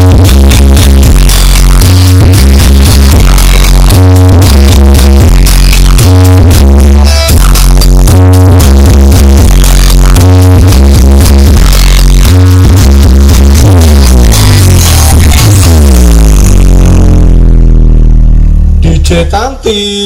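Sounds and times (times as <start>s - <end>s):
electronic dance music: 0.0s - 20.0s.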